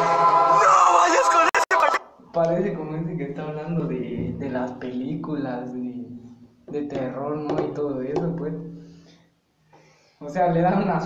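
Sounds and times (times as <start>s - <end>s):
person talking: 0.6s - 2.6s.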